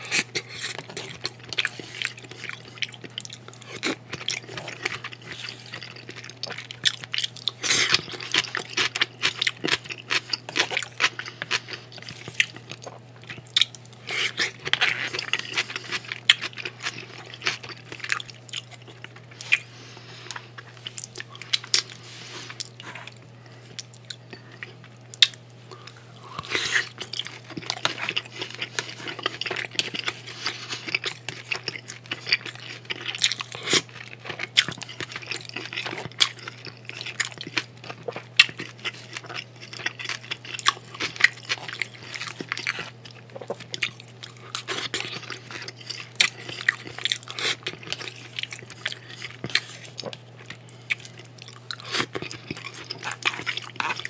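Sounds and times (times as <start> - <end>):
crunchy chewing: 0.0 - 54.0
steady low hum: 0.0 - 54.0.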